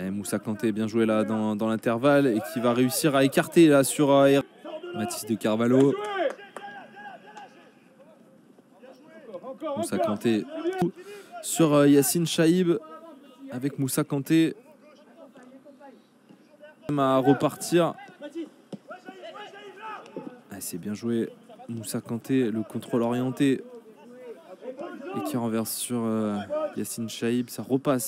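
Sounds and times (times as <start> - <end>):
players calling out: 0.0 - 27.4.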